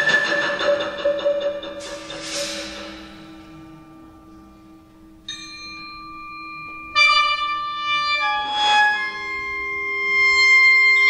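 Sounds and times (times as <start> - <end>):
percussion: 0.0 - 11.0
sheng sustained tones: 0.0 - 11.0
high ringing tones: 1.8 - 11.0.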